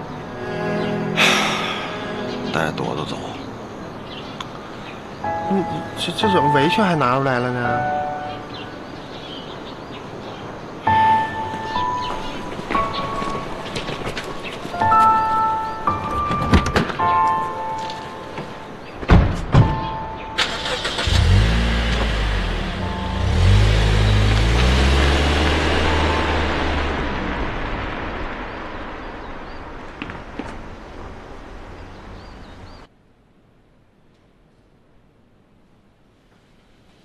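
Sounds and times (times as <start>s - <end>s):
music: 0.0s - 2.8s, 5.2s - 8.8s, 10.9s - 18.6s
car engine starting and revving: 20.4s - 29.7s.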